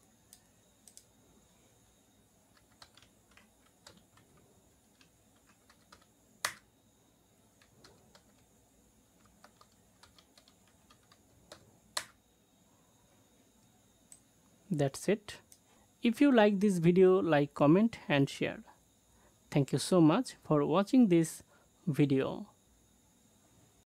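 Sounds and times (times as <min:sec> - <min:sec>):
keyboard typing: 0:00.3 - 0:01.1, 0:02.5 - 0:06.7, 0:07.6 - 0:08.5, 0:09.2 - 0:12.2.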